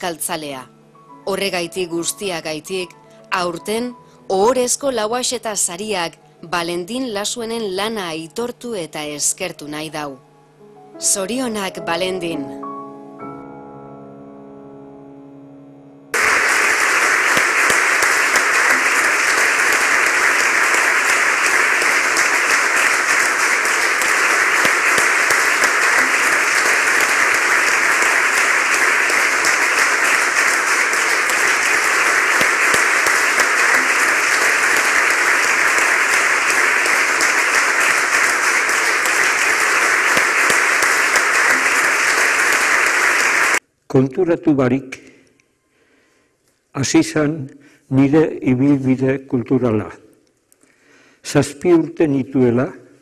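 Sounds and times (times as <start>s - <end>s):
audience applauding: 16.2s - 43.6s.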